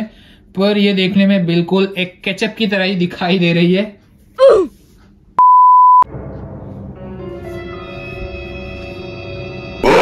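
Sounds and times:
steady test tone beep: 5.4s - 6.1s.

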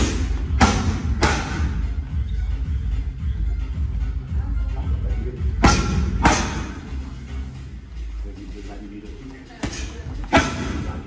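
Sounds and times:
boxing glove strikes on pads: 0.0s - 1.8s, 5.6s - 6.8s, 9.6s - 11.0s.

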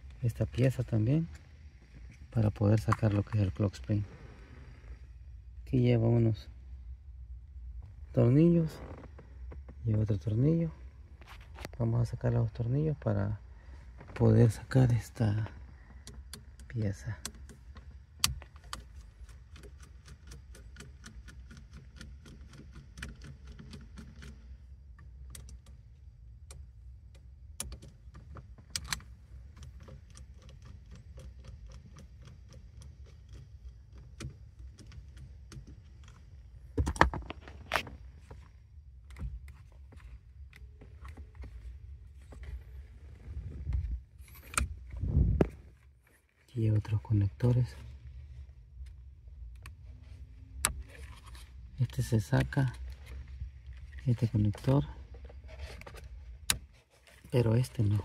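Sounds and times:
low steady rumble: 0.0s - 58.0s.

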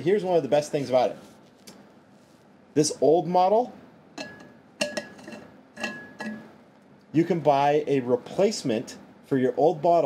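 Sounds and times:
metal water bottles clinking: 4.2s - 6.5s.

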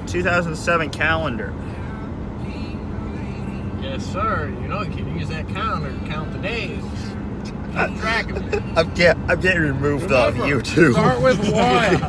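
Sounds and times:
road and engine noise: 0.0s - 12.0s.

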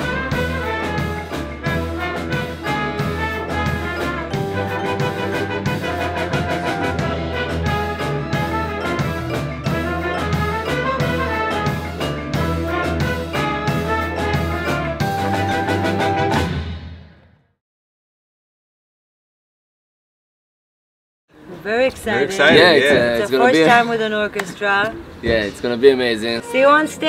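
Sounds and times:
orchestra playing upbeat tune: 0.0s - 16.8s.

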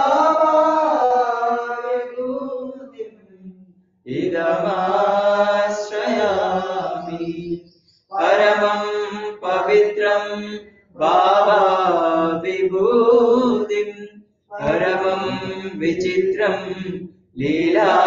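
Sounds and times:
person chanting a mantra: 4.1s - 18.0s.

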